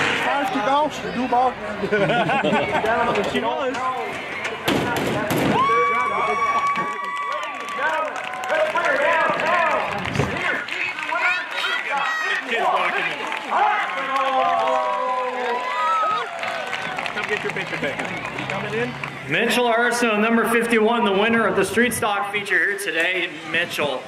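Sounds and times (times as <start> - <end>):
excited voices shouting: 5.5 - 17.2.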